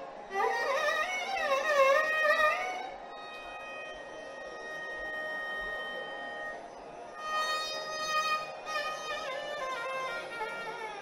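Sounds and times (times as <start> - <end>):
violin long bowed note: 0.0 - 11.0.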